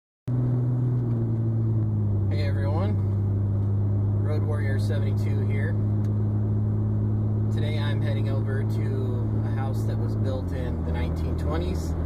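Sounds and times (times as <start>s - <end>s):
road noise: 0.3s - 12.0s
truck engine drone: 0.3s - 12.0s.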